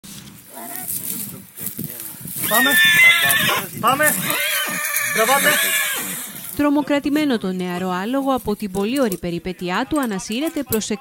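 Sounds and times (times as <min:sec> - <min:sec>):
people's voices: 0:00.4 - 0:11.0
young horse distressed calls: 0:02.4 - 0:06.6.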